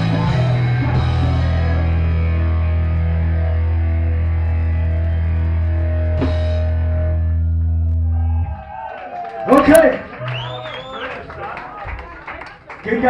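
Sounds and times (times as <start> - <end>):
distorted guitar chord ringing: 0.0 - 8.0.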